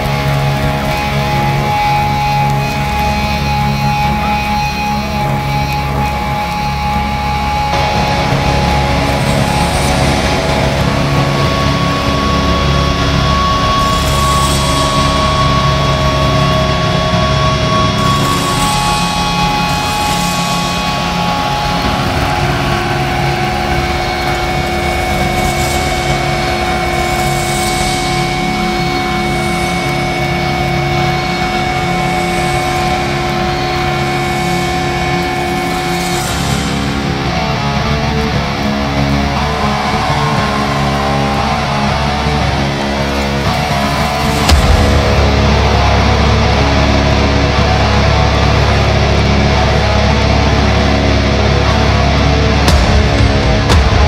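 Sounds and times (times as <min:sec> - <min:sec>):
clean guitar: 0:00.0 - 0:54.0
droning held notes: 0:00.0 - 0:54.0.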